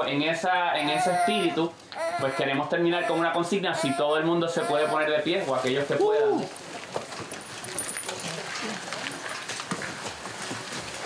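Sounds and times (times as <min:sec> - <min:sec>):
people getting to their feet: 0:00.8 - 0:11.0.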